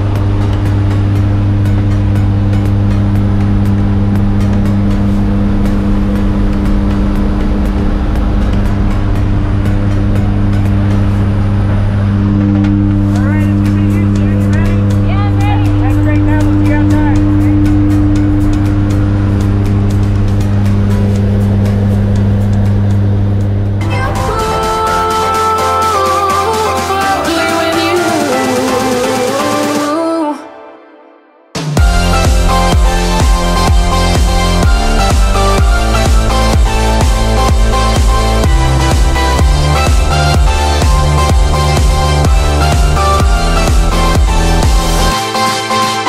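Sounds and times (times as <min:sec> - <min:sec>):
airplane engine drone: 0:00.0 - 0:29.8, 0:31.7 - 0:46.0.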